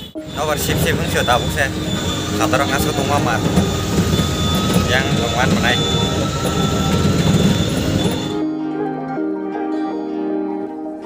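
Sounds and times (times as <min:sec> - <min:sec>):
auto-rickshaw engine rumble: 0:00.0 - 0:08.4.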